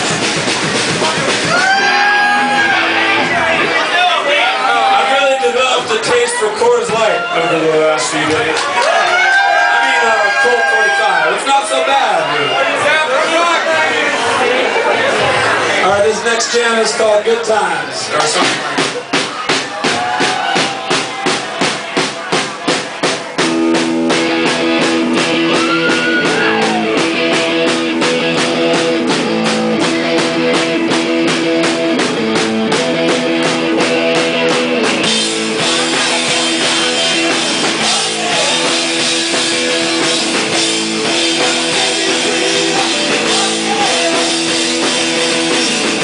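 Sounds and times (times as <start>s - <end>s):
drum kit beat: 0.0s - 4.0s, 18.2s - 46.0s
bass guitar: 0.0s - 46.0s
electric guitar: 23.3s - 46.0s.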